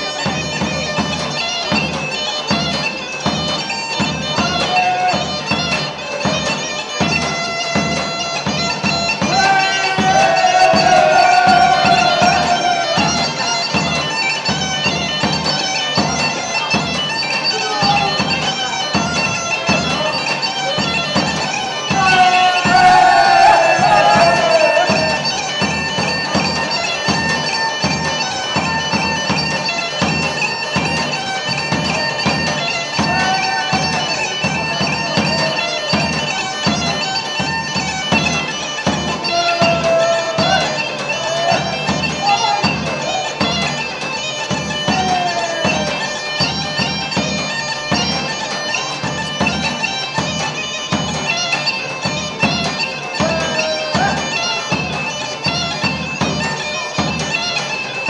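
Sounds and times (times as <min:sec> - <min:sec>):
drum beat: 0:00.0 - 0:17.0, 0:20.8 - 0:27.4, 0:28.6 - 0:36.9, 0:38.1 - 0:43.8, 0:44.5 - 0:47.2, 0:53.2 - 0:55.0
bagpipe melody with drone: 0:00.0 - 0:58.0.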